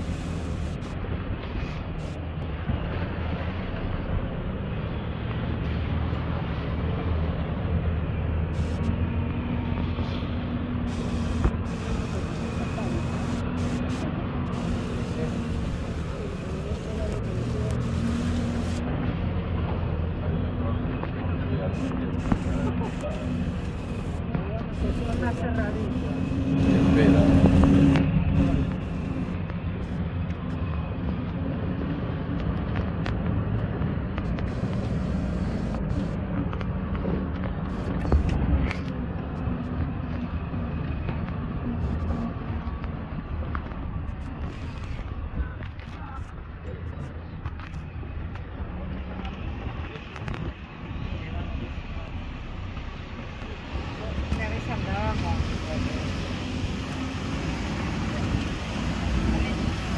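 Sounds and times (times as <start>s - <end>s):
truck driving on dirt track: 0.0s - 59.9s.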